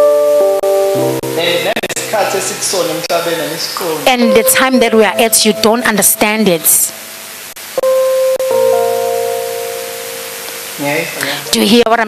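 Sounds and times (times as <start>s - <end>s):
keyboard playing sustained chords: 0.0s - 11.7s.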